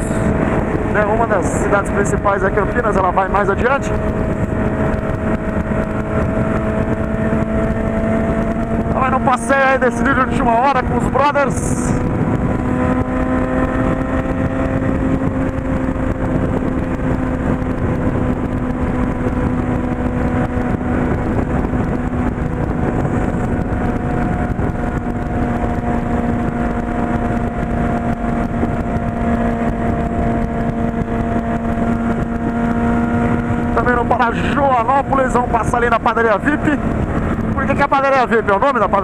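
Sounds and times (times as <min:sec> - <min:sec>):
motorcycle engine cruising: 0:00.0 - 0:39.0
wind and road noise: 0:00.0 - 0:39.0.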